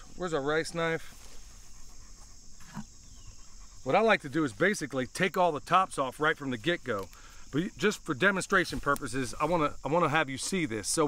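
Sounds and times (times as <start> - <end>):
insects chirring: 0.0 - 11.0.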